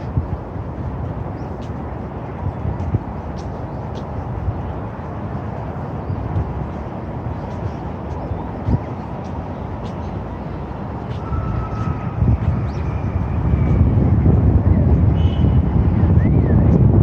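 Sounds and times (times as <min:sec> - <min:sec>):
road traffic rumble: 0:00.0 - 0:17.0
wind buffeting microphone: 0:00.0 - 0:17.0.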